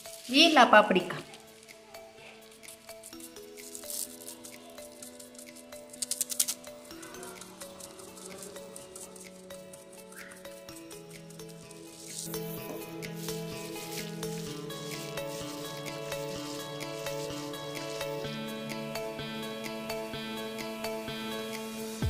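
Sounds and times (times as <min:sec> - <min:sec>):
plastic crinkling: 0:00.0 - 0:18.2
background music with held notes: 0:00.0 - 0:22.0.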